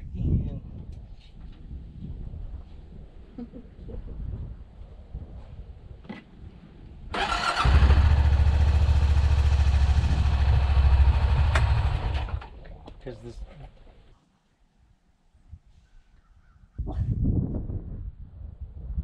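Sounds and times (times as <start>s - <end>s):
engine starting and pulsing: 7.1s - 12.6s.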